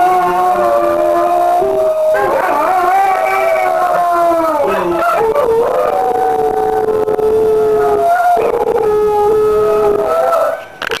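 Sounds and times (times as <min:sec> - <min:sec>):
dog howling: 0:00.0 - 0:10.8.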